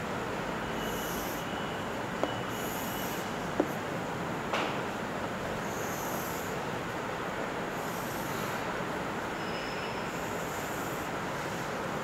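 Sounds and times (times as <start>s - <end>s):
chalk tapping on board: 2.2s - 2.8s, 3.6s - 3.8s.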